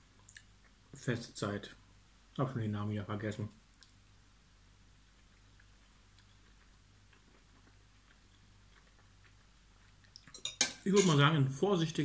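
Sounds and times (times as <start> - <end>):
low steady hum: 0.0 - 12.0
faint chewing: 0.1 - 1.0, 3.7 - 4.0, 5.0 - 10.6
man speaking: 1.0 - 1.8, 2.4 - 3.6, 10.8 - 12.0.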